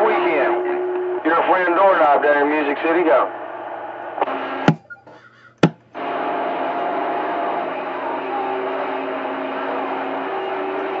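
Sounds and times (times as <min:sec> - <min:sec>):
radio static: 0:00.0 - 0:05.0
whistling tones: 0:04.8 - 0:05.2.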